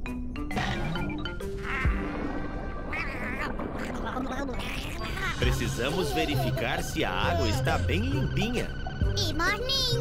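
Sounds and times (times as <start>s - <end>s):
cartoon character crying in pain: 1.4s - 2.0s.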